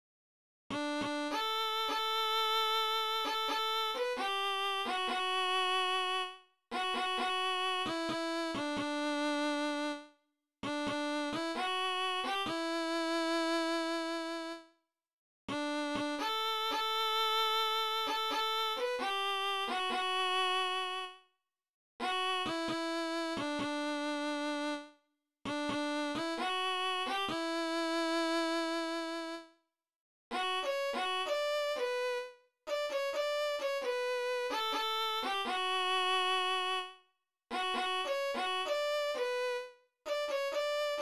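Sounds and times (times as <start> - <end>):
synthesized violin melody: 0.7 - 14.7, 15.5 - 21.2, 22.0 - 29.5, 30.3 - 41.0.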